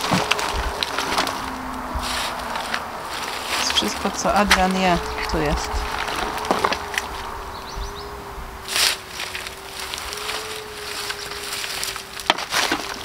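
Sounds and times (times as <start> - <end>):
garden fork scraping compost: 0.0 - 7.7, 8.6 - 13.0
faint steady hum: 0.0 - 13.0.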